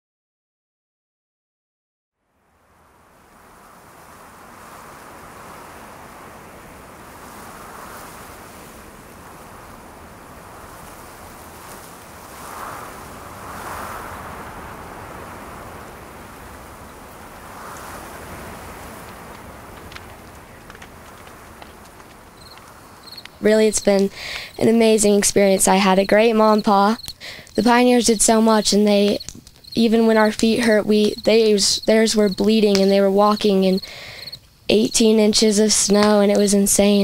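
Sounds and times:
wind blowing in gusts: 2.3 - 37.0.

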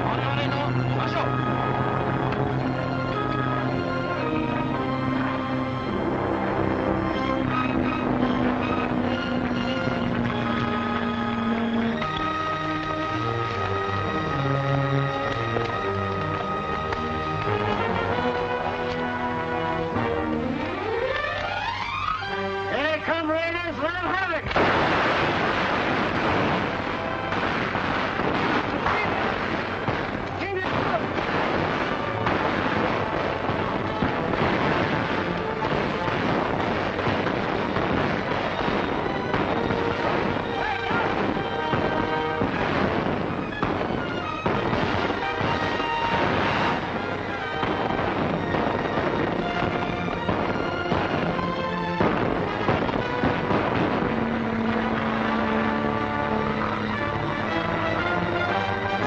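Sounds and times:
explosions: 0.0 - 22.0, 24.4 - 59.0
orchestral music: 0.0 - 59.0
gunfire: 24.4 - 59.0.

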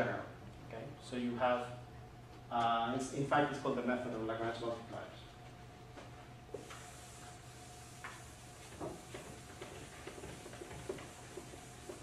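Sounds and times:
chalkboard eraser rubbing: 6.6 - 12.0.

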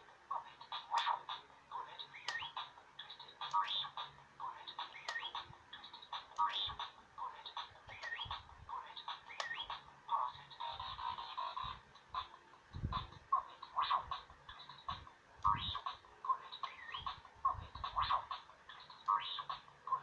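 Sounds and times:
electronic toy beeps and whistles: 2.0 - 4.1, 4.7 - 6.9, 7.9 - 8.4, 9.0 - 12.3, 13.0 - 17.2, 17.8 - 20.0.

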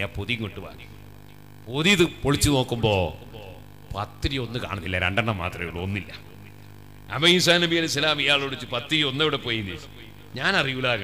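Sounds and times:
electrical mains hum: 0.0 - 11.0
man preaching into a microphone: 0.0 - 11.0.

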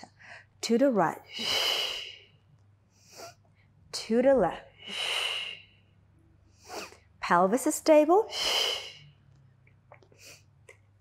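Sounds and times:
woman breathing out with a hiss: 1.3 - 2.3, 4.8 - 5.7, 8.3 - 9.1.

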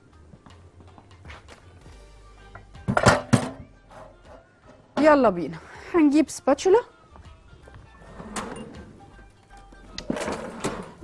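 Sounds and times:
soft background music: 0.0 - 11.0
kitchenware clattering: 2.9 - 3.7.

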